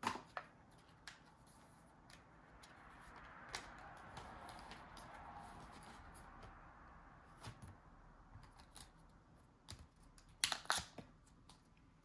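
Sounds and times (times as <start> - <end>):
card packaging clicking and crinkling: 9.6 - 11.7.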